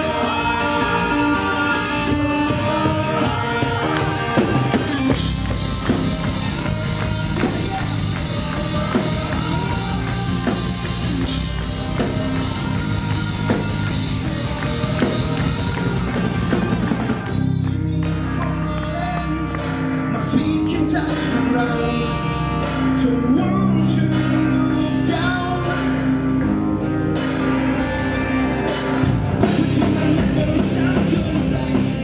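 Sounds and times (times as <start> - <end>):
drum kit: 0.0 - 32.0
electric guitar: 0.0 - 32.0.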